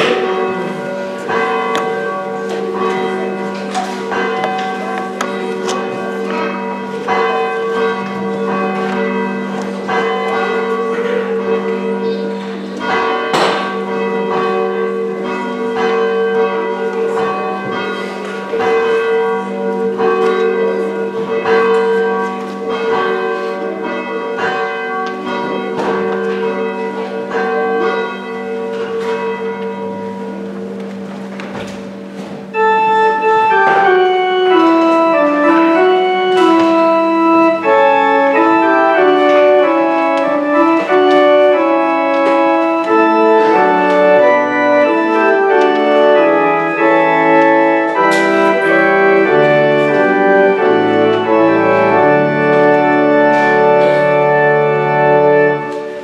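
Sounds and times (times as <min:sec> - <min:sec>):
church bell ringing: 0:00.0 - 0:56.0.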